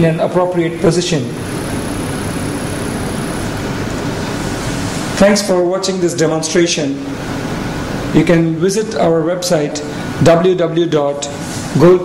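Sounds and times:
thin high whine: 0.0 - 5.7
steady broadband hiss: 0.0 - 12.0.

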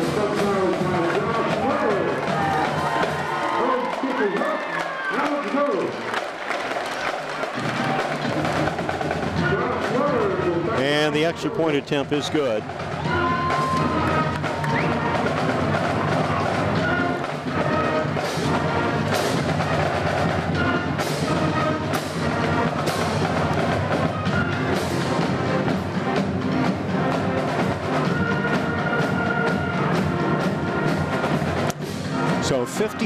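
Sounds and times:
band music with drums and horns: 0.0 - 33.0.

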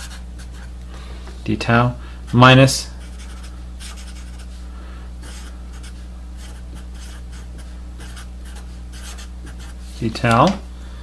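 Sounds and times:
marker writing on paper: 0.0 - 0.7, 3.0 - 4.6, 5.2 - 9.9
low electrical hum: 0.0 - 11.0.

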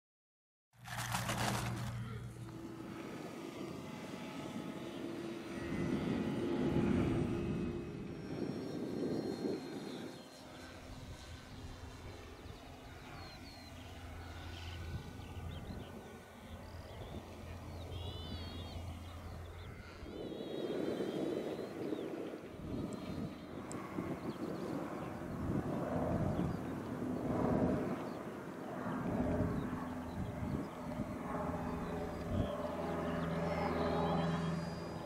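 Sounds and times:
model airplane motor droning: 0.8 - 35.0
birds chirping: 8.0 - 35.0.

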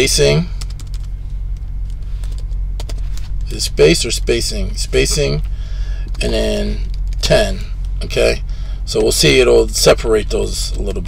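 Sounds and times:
low electrical hum: 0.0 - 11.0
computer keyboard typing: 0.6 - 1.1, 1.9 - 3.5, 6.0 - 7.7.

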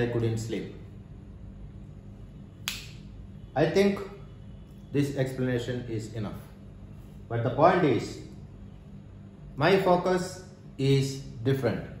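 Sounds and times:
faint steady low hum: 0.0 - 12.0.

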